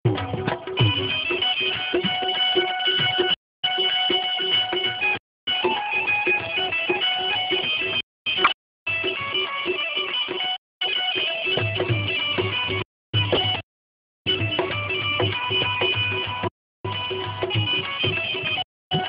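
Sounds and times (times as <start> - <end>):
instrumental folk music: 0.1 - 13.7, 14.3 - 19.0.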